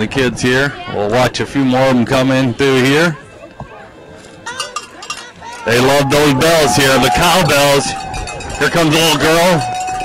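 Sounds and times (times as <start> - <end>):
cowbells ringing: 4.4 - 10.0.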